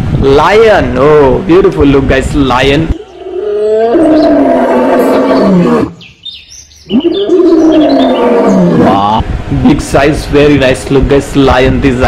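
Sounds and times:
lion roaring: 0:03.0 - 0:06.0, 0:06.9 - 0:09.2.

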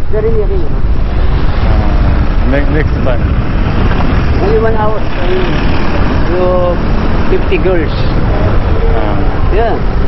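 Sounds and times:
low rumble of street traffic: 0:00.0 - 0:10.0
man's voice: 0:01.6 - 0:03.2.

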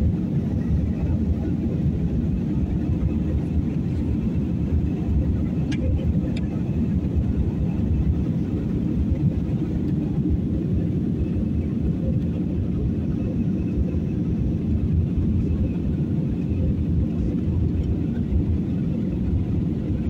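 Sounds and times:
jet engine cabin rumble: 0:00.0 - 0:20.0.

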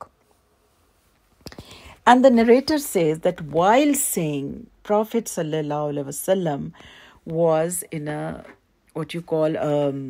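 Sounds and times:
woman speaking: 0:01.9 - 0:10.0.

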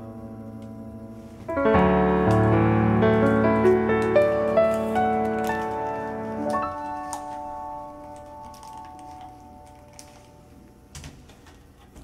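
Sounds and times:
held piano chord: 0:00.0 - 0:10.8.

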